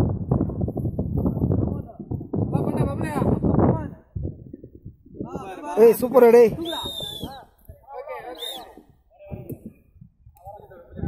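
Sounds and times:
people talking and calling out: 1.3 - 11.0.

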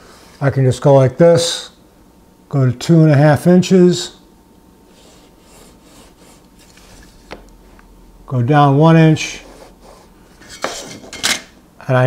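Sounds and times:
metal rule scratching wood: 4.9 - 7.2.

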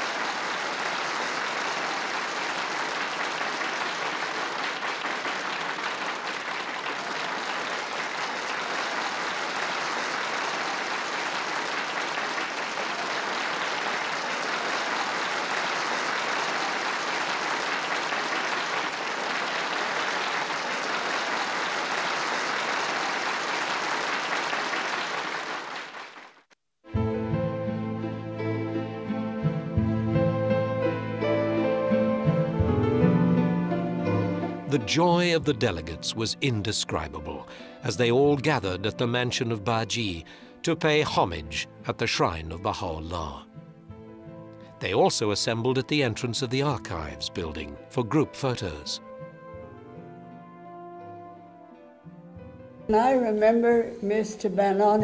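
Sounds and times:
audience applauding: 0.0 - 26.5, 34.1 - 43.4, 44.6 - 49.0.

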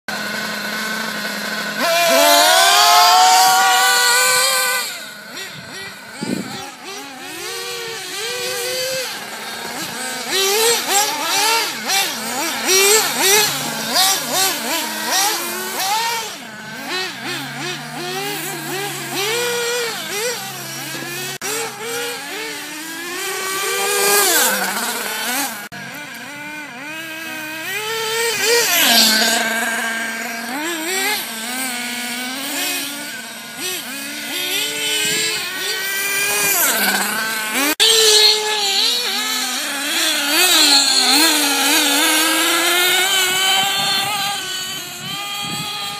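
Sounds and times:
small engines screaming: 0.1 - 45.9.

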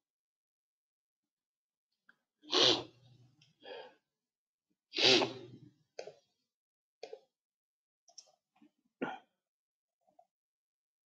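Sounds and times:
person sneezing: 2.5 - 3.0, 4.9 - 5.6.

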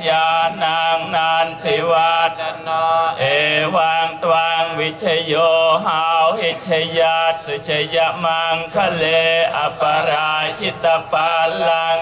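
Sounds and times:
monks chanting: 0.0 - 12.0.

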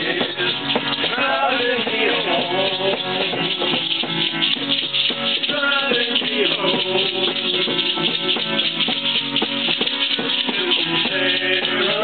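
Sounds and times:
acoustic guitars strumming: 0.0 - 12.0
bright rattling shaker: 0.0 - 12.0.

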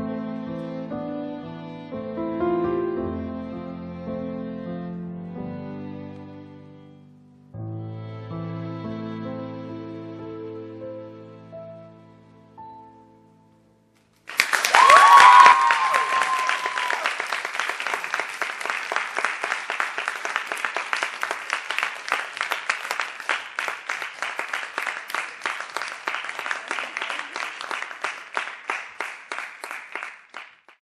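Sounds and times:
audience applauding: 14.2 - 30.8
high cheer: 14.3 - 22.5, 24.7 - 28.4.

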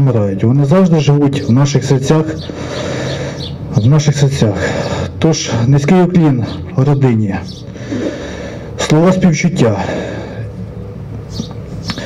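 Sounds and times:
low background hum: 0.0 - 12.0
faint breaths: 2.3 - 3.7, 4.4 - 5.7, 7.6 - 8.9, 9.7 - 11.2.

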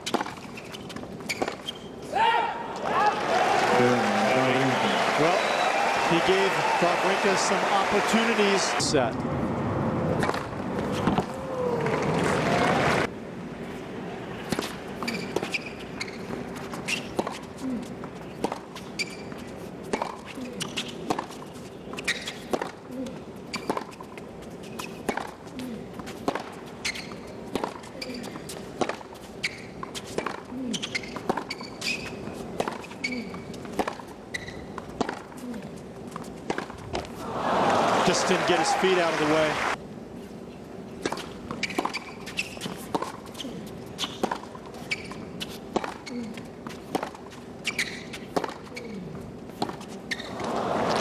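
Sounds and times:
shoes squeaking on court: 0.0 - 2.1, 10.2 - 11.3, 14.4 - 37.2, 38.3 - 51.0
tennis ball bouncing: 10.1 - 11.3, 14.4 - 22.9, 23.5 - 37.2, 41.0 - 48.9, 49.5 - 51.0
racquet striking tennis ball: 26.2 - 26.5, 31.0 - 35.4, 45.7 - 46.0
crowd murmur: 37.2 - 39.8.

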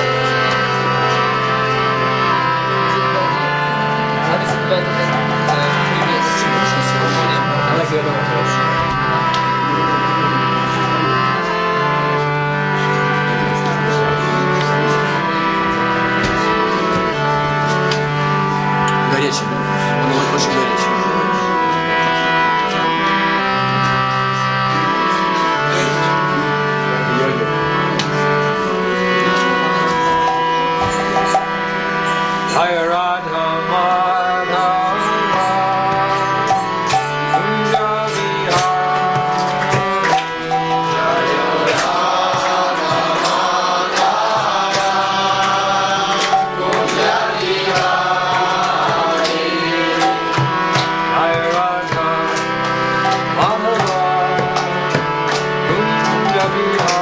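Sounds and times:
harmonium sustained chords: 0.0 - 57.0.

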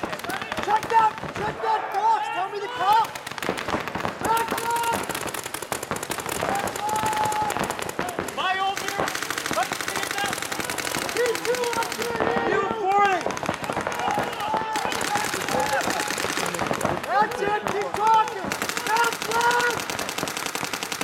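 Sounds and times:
paintball markers firing rapidly: 0.0 - 2.1, 2.7 - 21.0
people shouting: 0.0 - 20.4.

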